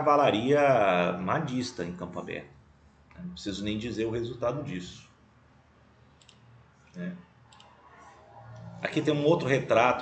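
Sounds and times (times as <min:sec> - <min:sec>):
low steady hum: 0:00.0 - 0:10.0
computer mouse clicking: 0:06.1 - 0:06.4, 0:07.5 - 0:07.8.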